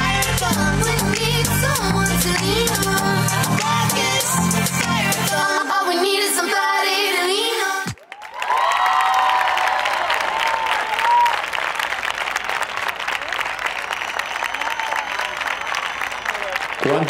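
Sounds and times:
audience applauding: 0:07.9 - 0:17.0
cheering shouts: 0:08.0 - 0:11.6, 0:13.2 - 0:17.0.

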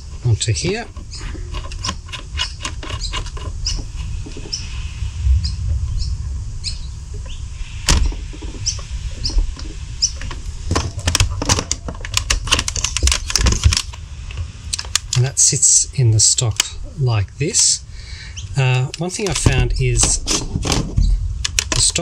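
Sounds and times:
hose chuck squeaking: 0:00.0 - 0:04.6
plastic clicks and knocks: 0:09.6 - 0:14.0, 0:18.8 - 0:22.0.

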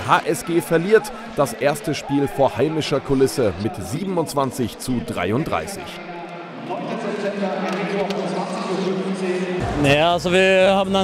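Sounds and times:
crowd voices mingling: 0:00.0 - 0:11.0.

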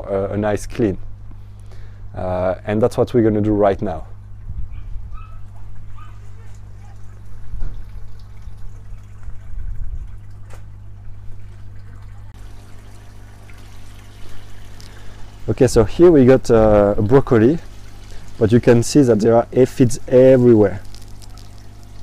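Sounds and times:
steady low hum: 0:00.0 - 0:22.0
water trickling and splashing: 0:05.6 - 0:22.0.

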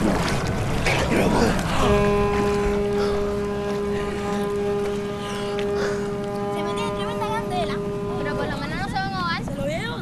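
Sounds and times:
boat horn blast: 0:00.0 - 0:09.9
water wash: 0:00.0 - 0:10.0
wind: 0:00.0 - 0:10.0.

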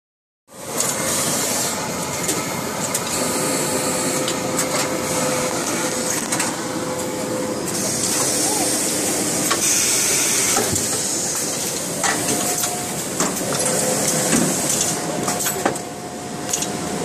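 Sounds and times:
machinery running with air hiss: 0:00.5 - 0:17.0.

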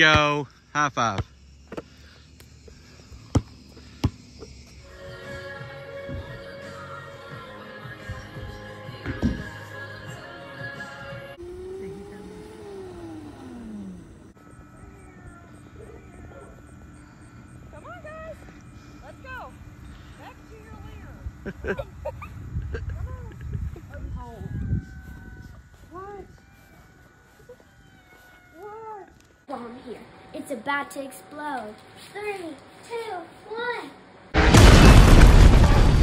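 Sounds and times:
faint steady hum: 0:00.0 - 0:36.0
music: 0:04.8 - 0:11.4.

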